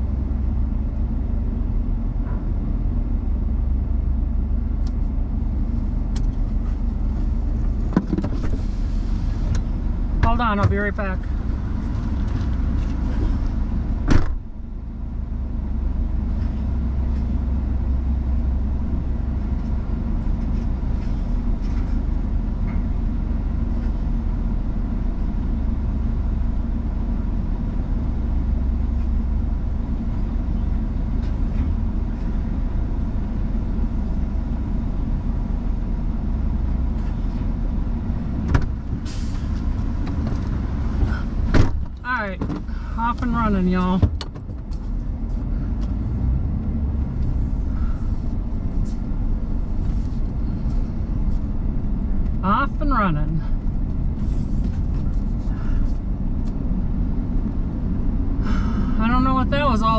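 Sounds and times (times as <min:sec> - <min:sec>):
vehicle engine idling: 0:00.0 - 0:59.9
vehicle door shutting: 0:14.0 - 0:14.5, 0:40.1 - 0:42.8.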